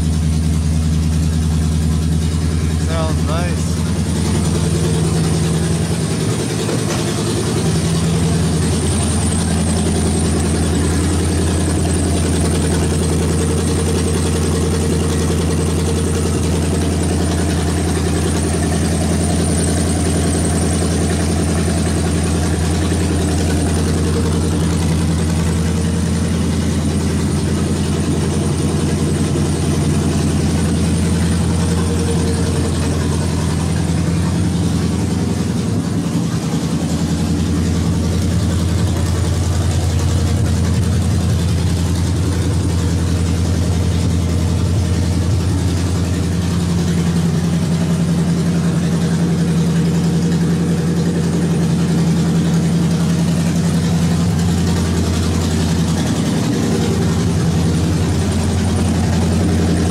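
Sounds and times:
car engine idling: 0.0 - 59.9.

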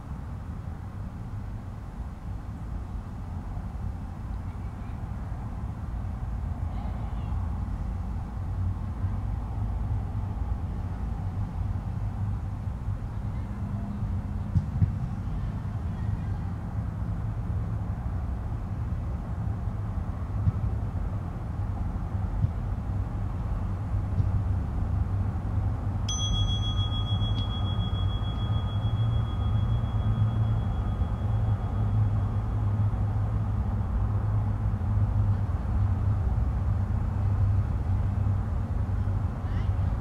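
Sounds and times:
steady low rumble: 16.6 - 40.0
high bell ding: 26.1 - 33.0.

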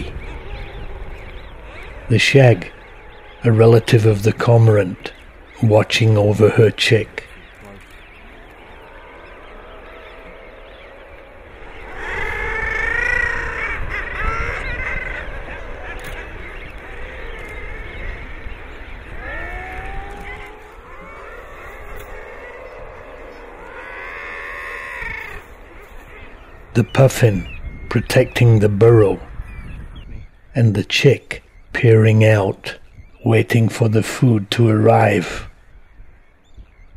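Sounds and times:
seabirds calling: 0.0 - 36.9.

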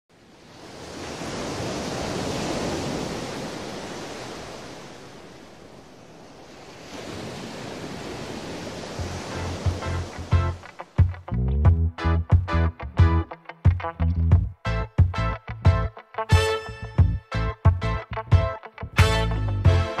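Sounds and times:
waves breaking: 0.1 - 11.3
music with bass beat: 9.7 - 20.0.

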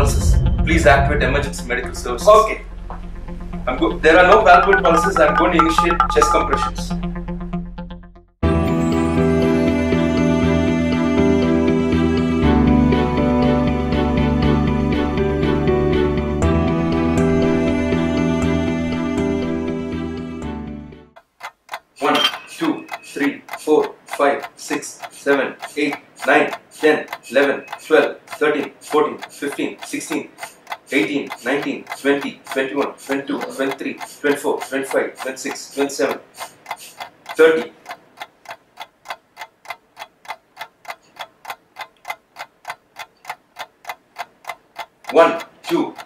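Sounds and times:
sharp ticks: 4.3 - 6.9, 21.2 - 46.0
man counting aloud: 45.1 - 46.0.

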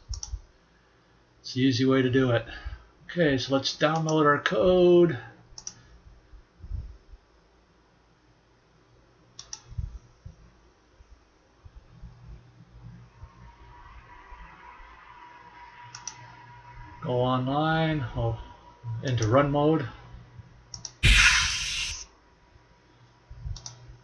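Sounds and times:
computer mouse clicks: 0.1 - 0.4, 5.6 - 5.8, 9.4 - 9.7, 15.9 - 16.2, 23.6 - 23.8
faint hiss: 21.0 - 22.0
steady hum: 21.0 - 22.0.

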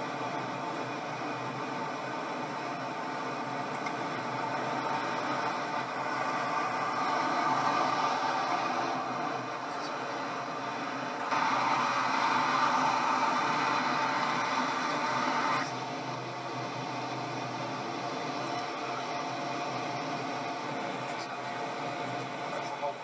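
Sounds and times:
car road and engine noise: 0.0 - 23.0.

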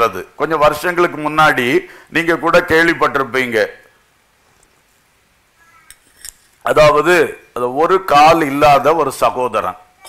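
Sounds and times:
man speaking: 0.0 - 3.8, 6.6 - 9.9.

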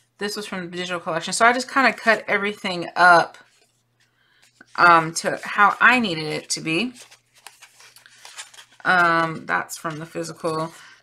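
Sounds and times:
woman speaking: 0.2 - 3.5, 4.6 - 7.0, 8.8 - 10.9
paper rustling: 3.4 - 10.8.

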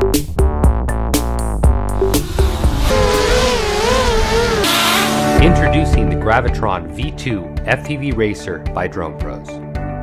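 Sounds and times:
hiss: 2.0 - 5.2
quadcopter motors whining: 2.0 - 5.4.

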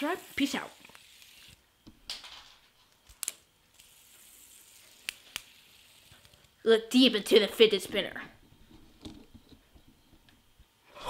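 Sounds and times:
faint high hiss: 0.0 - 1.9
fidget spinner clicks: 0.2 - 1.6, 3.1 - 6.6.

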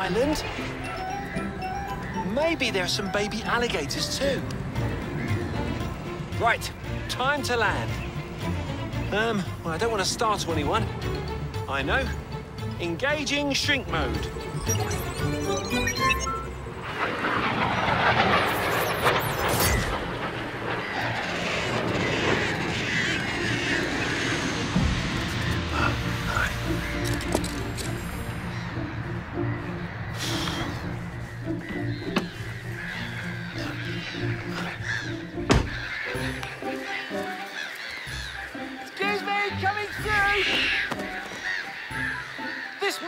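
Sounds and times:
honking bird calls: 0.0 - 16.0, 22.0 - 43.0
children's adventure music: 0.0 - 16.9, 25.5 - 43.0.

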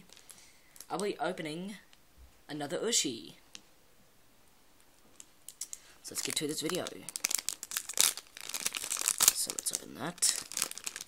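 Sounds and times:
plastic bag crinkling: 0.0 - 1.0, 5.1 - 11.0.

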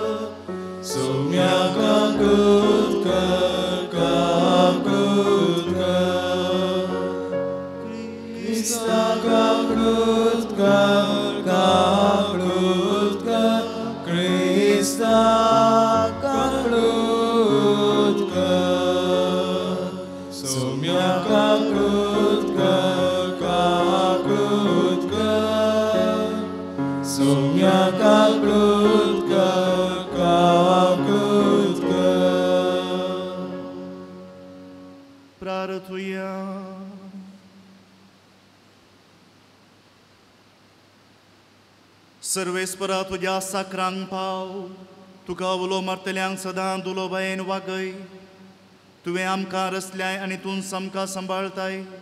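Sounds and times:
sustained accompaniment: 0.0 - 35.6
hymn sung slowly: 0.0 - 38.0, 42.2 - 52.0.

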